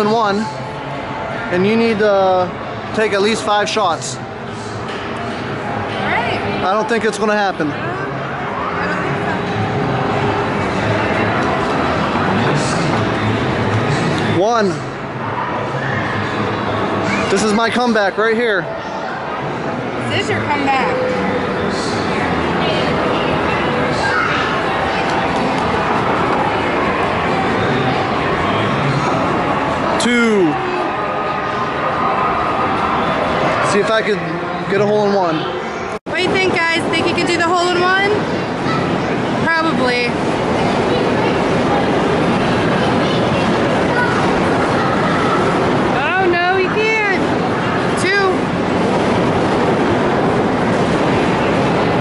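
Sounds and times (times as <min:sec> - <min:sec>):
arcade and crowd din: 0:00.0 - 0:52.0
voices: 0:00.0 - 0:52.0.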